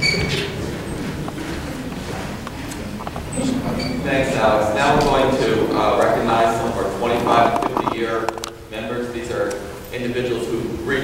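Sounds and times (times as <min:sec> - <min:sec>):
man speaking into a microphone: 0:03.5 - 0:11.0.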